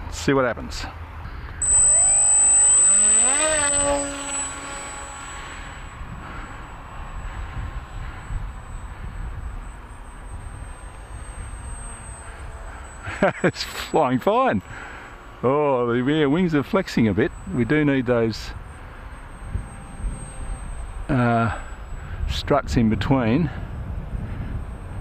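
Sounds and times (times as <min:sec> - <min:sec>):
propeller buzz: 0:01.0 - 0:25.0
rc plane motor whine: 0:01.0 - 0:25.0.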